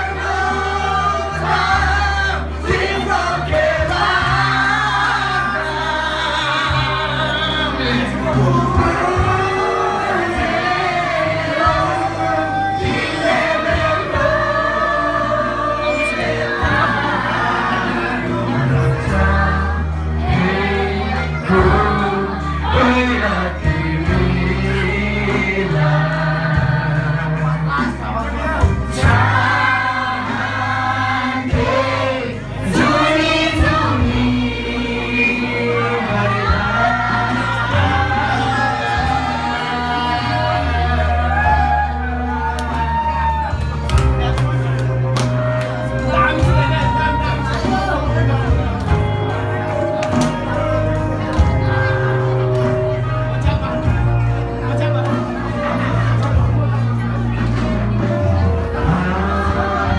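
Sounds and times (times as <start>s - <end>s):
loud amplified music with bass: 0.0s - 59.9s
voices singing together: 0.0s - 59.9s.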